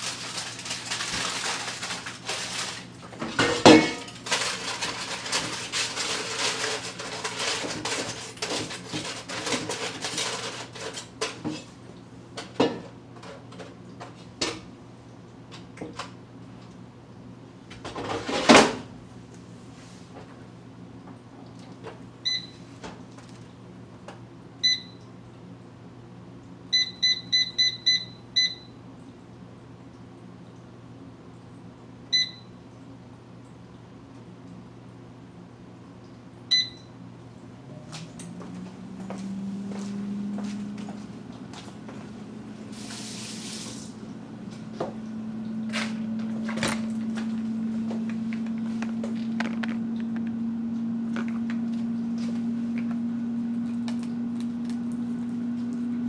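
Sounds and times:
aluminium foil rustling: 0.0 - 11.4
kitchenware being handled: 2.5 - 11.7
dishware clattering: 3.3 - 4.2
air fryer control panel beeping: 22.2 - 22.6, 24.6 - 25.1, 26.7 - 28.8, 32.1 - 32.6, 36.5 - 37.0.

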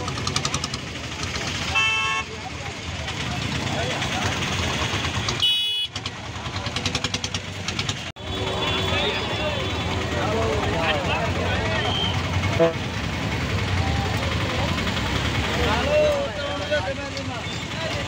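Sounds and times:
people's voices: 0.0 - 18.0
vehicle engines in traffic: 0.0 - 18.0
car horn: 1.7 - 2.4, 5.4 - 6.0, 8.2 - 10.0, 11.9 - 12.9.

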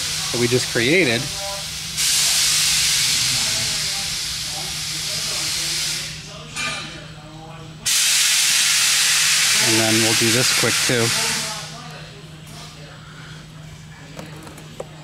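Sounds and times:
loud steady hiss: 0.0 - 6.4, 7.8 - 11.8.

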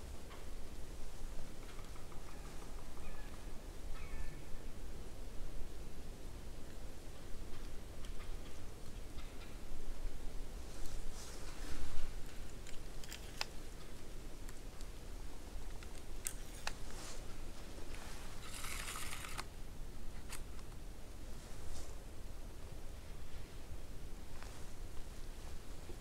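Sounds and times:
clothing rustle: 10.6 - 13.4, 16.3 - 19.4, 24.3 - 26.0.

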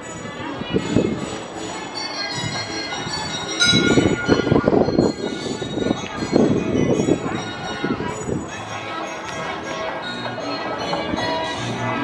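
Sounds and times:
carousel music with bell-like chimes: 0.0 - 12.0.

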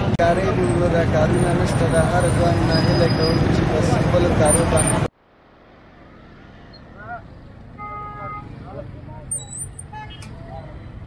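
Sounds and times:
motorbike and car traffic rumble: 0.0 - 11.0.

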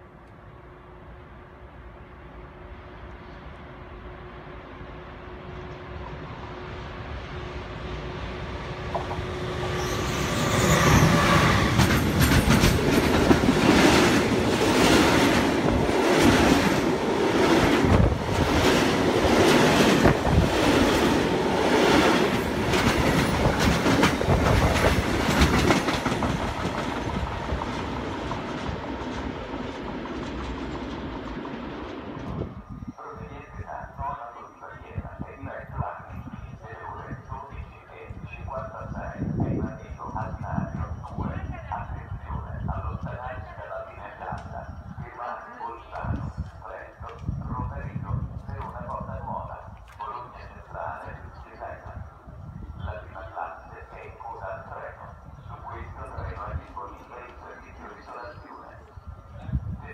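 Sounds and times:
train hum: 0.0 - 59.9.

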